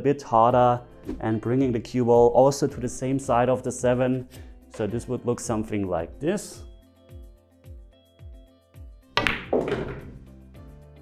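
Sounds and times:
music with steady beat: 2.6s - 11.0s
cue tip striking ball: 9.2s - 10.2s
pool balls clacking: 9.2s - 10.2s.

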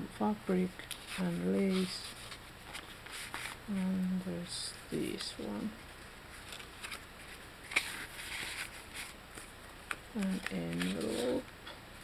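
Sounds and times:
paper crinkle: 0.8s - 3.8s, 4.6s - 11.4s
paper rustling and sliding: 0.8s - 3.8s, 6.0s - 11.4s.

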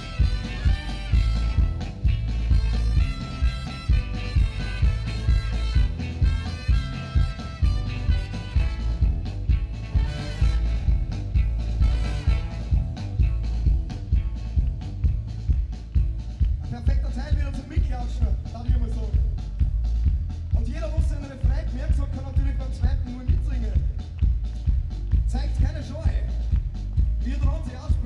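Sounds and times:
trumpet and trombone lines: 0.0s - 13.2s
ska-punk band playing: 0.0s - 28.0s.

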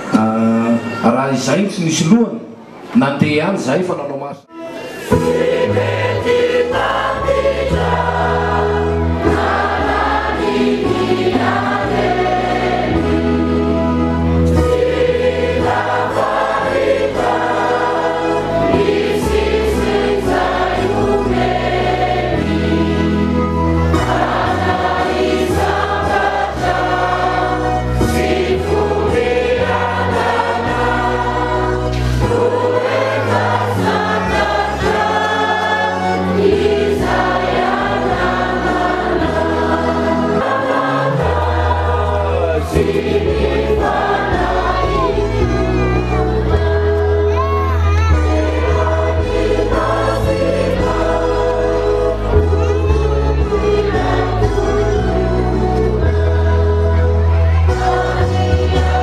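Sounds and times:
instrumental accompaniment: 4.4s - 59.0s
choir singing a hymn: 4.6s - 59.0s.

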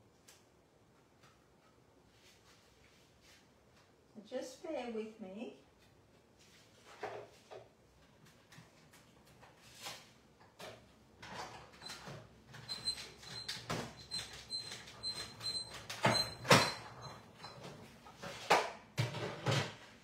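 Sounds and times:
embossing machine creaks and knocks: 11.2s - 17.8s.

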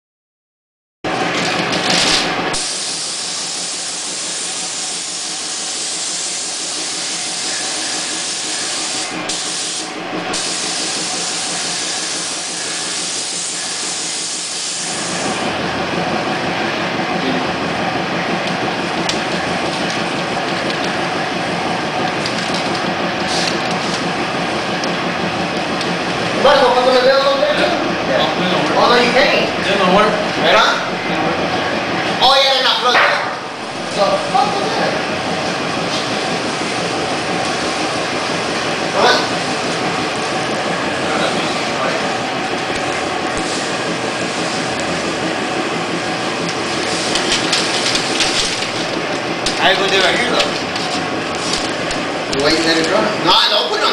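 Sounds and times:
rushing hiss of air: 2.6s - 15.4s.

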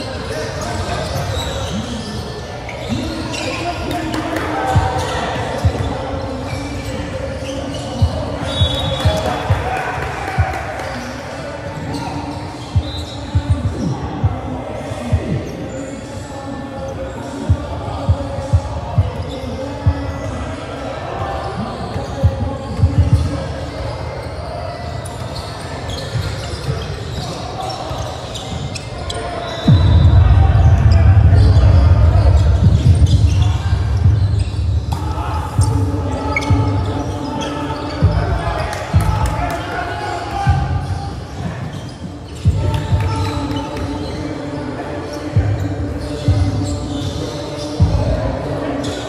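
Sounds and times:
players' voices echoing: 0.0s - 49.0s
loud low rumble: 29.7s - 36.0s
basketball bouncing on court: 29.7s - 36.9s.

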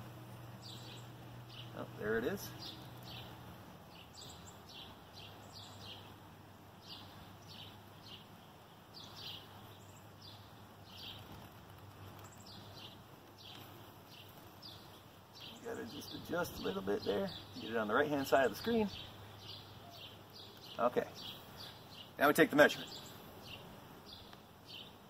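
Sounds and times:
low steady hum: 0.0s - 22.1s
light hiss: 0.0s - 25.0s
small birds chirping: 0.0s - 25.0s.

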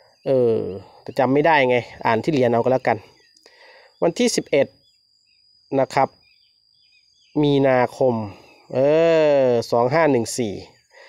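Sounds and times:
man speaking: 0.3s - 3.1s, 4.0s - 4.7s, 5.7s - 6.2s, 7.4s - 10.8s.

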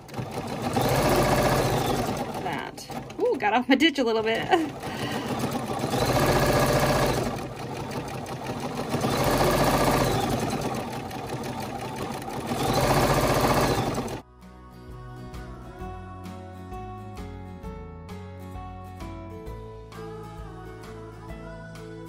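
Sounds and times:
sewing machine running: 0.0s - 3.6s, 4.2s - 14.2s
soft music: 12.8s - 22.0s.

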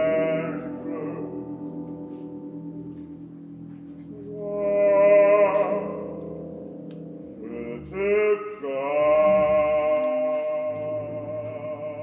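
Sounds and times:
low orchestral chord: 0.0s - 12.0s
operatic singing note: 0.0s - 12.0s.

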